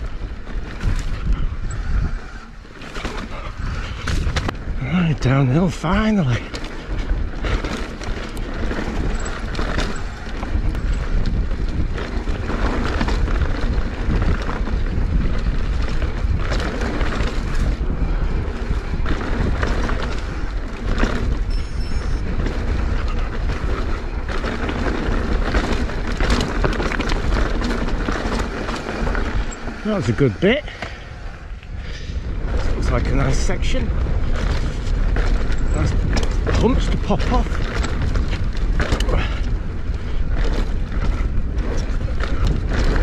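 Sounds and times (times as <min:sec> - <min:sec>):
bike rattling over stones: 0:00.0 - 0:43.0
bike tyres rumbling on dirt: 0:00.0 - 0:43.0
wind buffeting microphone: 0:00.0 - 0:43.0.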